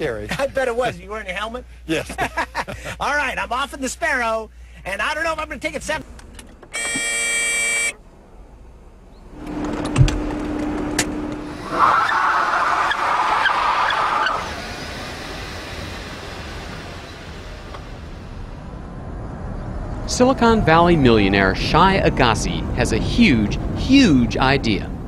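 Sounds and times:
car horn: 6.7s - 8.1s
car driving past: 14.0s - 23.8s.

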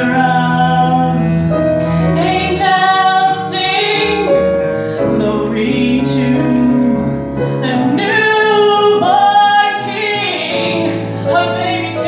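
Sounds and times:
woman singing into a microphone: 0.0s - 12.0s.

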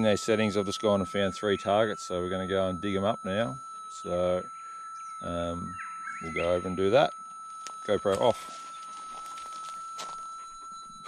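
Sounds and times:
metal detector steady high hum: 0.0s - 11.0s.

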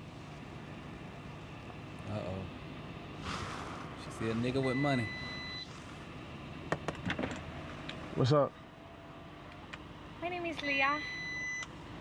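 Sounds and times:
high electronic beep: 4.6s - 5.7s.

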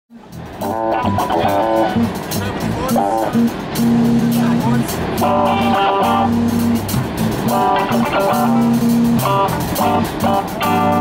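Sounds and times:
drum kit: 0.1s - 11.0s
electric bass notes: 0.1s - 11.0s
electric guitar chords: 0.1s - 11.0s.

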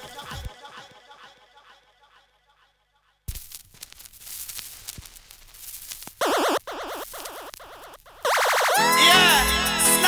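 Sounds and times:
vinyl record crackle and pops: 0.0s - 1.0s, 3.3s - 9.1s
warbling synth siren: 6.2s - 9.2s.

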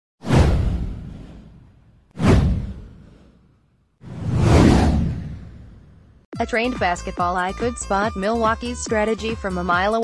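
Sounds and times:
swoosh sound effect: 0.2s - 6.2s.

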